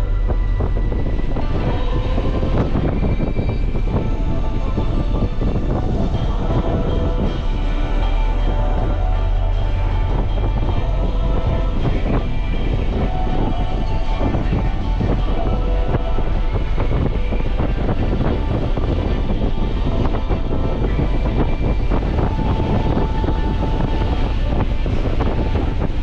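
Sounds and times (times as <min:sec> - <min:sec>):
car engine drone: 0:00.0 - 0:26.0
road noise: 0:00.0 - 0:26.0.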